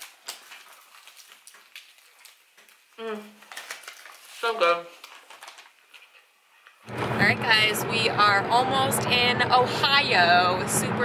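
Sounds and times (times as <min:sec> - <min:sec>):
person chewing: 0:00.0 - 0:03.9
small crackly clicks: 0:00.0 - 0:04.2, 0:05.0 - 0:06.8.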